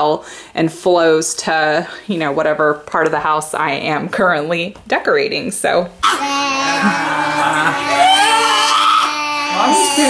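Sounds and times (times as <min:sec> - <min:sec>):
girl wailing: 0:06.0 - 0:10.0
man wailing: 0:06.6 - 0:10.0.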